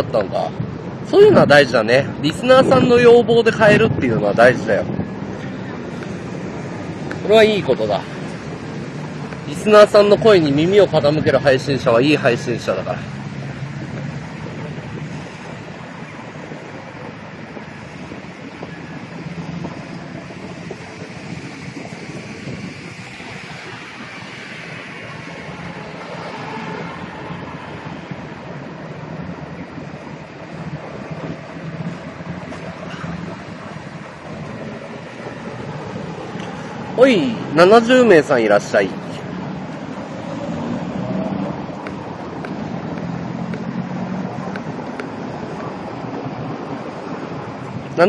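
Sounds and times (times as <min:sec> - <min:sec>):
distant traffic: 0:00.0 - 0:48.0
wind on microphone: 0:00.0 - 0:48.0.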